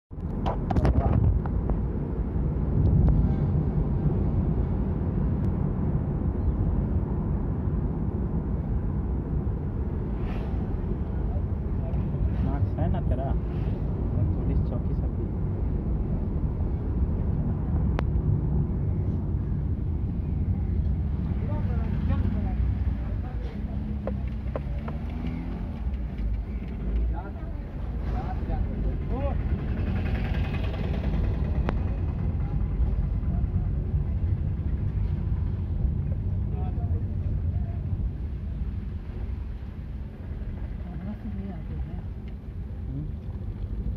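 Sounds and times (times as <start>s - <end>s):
vehicle road rumble: 0.1s - 43.9s.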